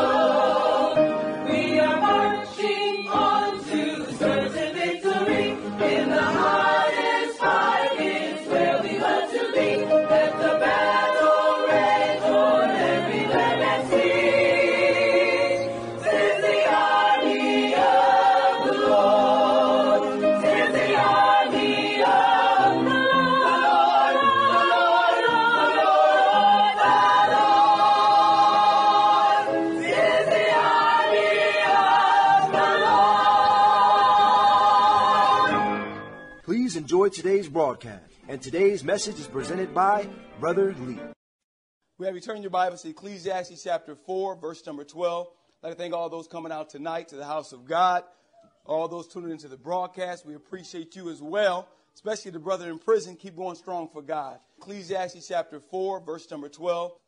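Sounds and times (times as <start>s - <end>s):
choir singing gospel song: 0.0s - 36.2s.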